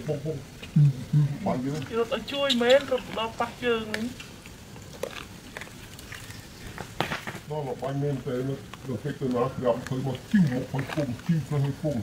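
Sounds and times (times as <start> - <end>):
man talking: 0.0 - 1.9, 7.5 - 12.0
low outdoor background: 0.0 - 12.0.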